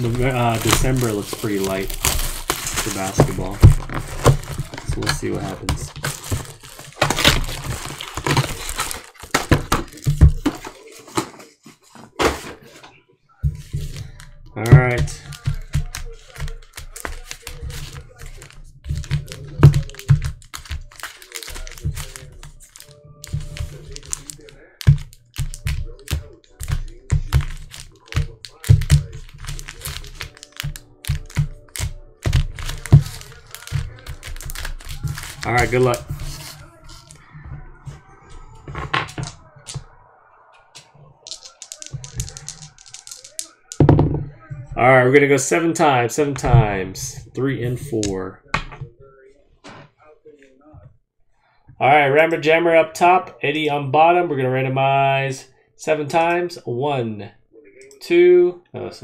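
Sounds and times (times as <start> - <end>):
packs knocking on table: 0.0 - 11.3, 13.6 - 37.0
foil card packs crinkling: 0.0 - 12.4, 13.6 - 37.3, 41.2 - 43.8
faint music: 0.0 - 59.0.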